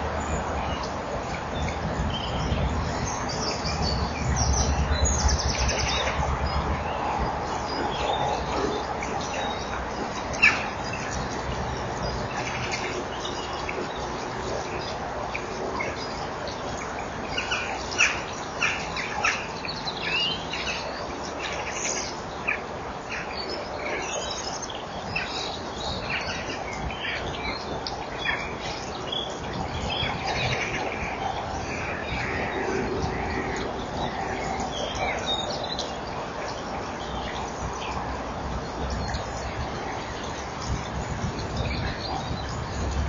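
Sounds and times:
small birds chirping: 0.0s - 43.0s.

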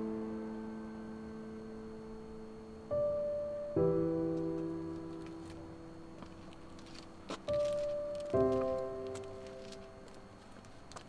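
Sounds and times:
soft piano chord: 0.0s - 10.4s.

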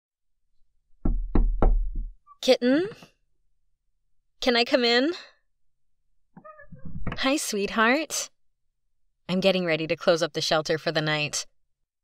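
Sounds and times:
knocking on a door: 1.0s - 2.2s.

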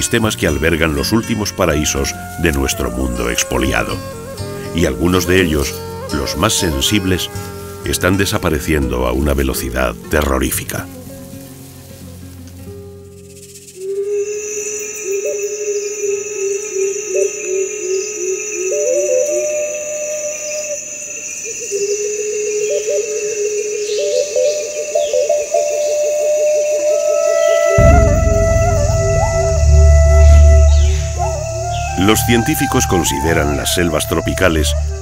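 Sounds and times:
sustained high tone: 27.0s - 35.0s
pulsing wavering melody: 27.4s - 35.0s
deep bass layer: 27.8s - 35.0s.

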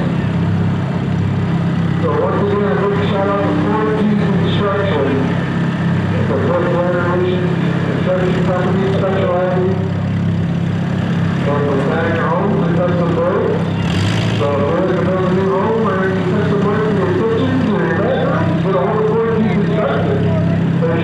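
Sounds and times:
engines idling: 0.0s - 21.0s
distant public address voice: 2.0s - 10.1s, 11.4s - 13.8s, 14.4s - 21.0s.

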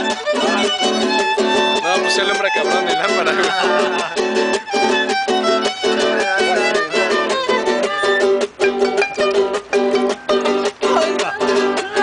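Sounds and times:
sliding string melody: 0.0s - 12.0s
strummed string chords: 0.0s - 12.0s.

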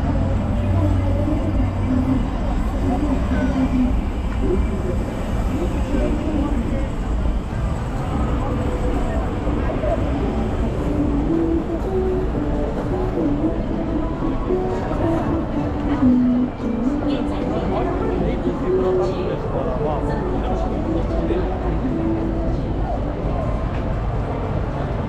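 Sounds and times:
chatter of passers-by: 0.0s - 25.0s
low rumble of traffic: 0.0s - 25.0s
music playing: 9.4s - 25.0s.

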